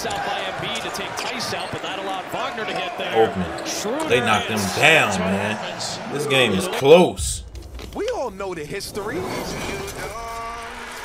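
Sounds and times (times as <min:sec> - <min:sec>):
commentator talking: 0:01.1 - 0:09.5.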